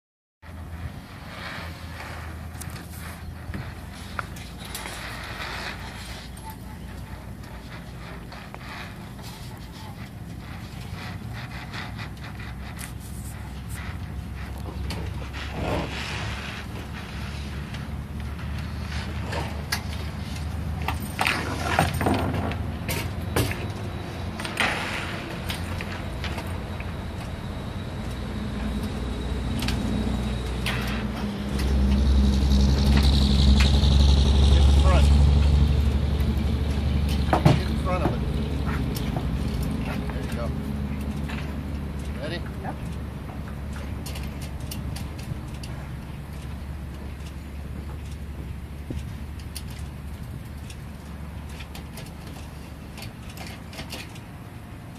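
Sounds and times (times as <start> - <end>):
low rumble with steady hum: 0.4 - 54.9
rigging knocking and clinking: 19.3 - 24.8.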